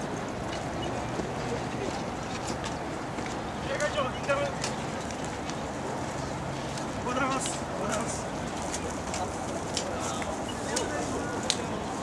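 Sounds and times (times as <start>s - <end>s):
faint distant voices: 0.0s - 12.0s
outdoor background noise: 0.0s - 12.0s.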